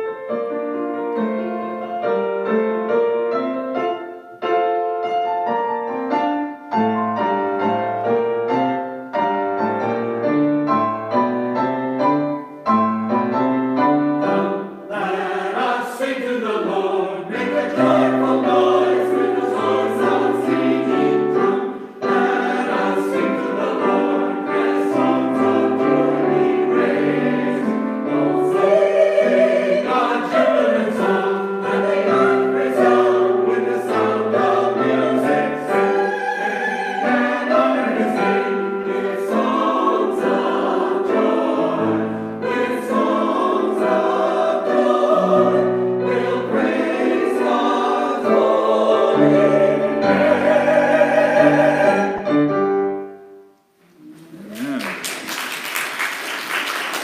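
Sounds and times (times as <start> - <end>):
piano accompaniment: 0.0 - 54.8
choir singing in parts: 13.9 - 53.1.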